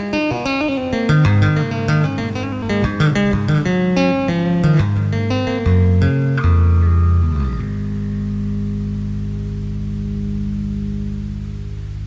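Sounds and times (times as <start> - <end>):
bass guitar chord ringing: 0.0 - 12.0.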